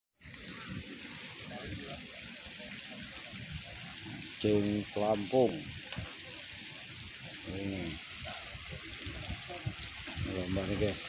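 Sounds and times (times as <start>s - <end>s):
running water hiss: 0.2s - 11.0s.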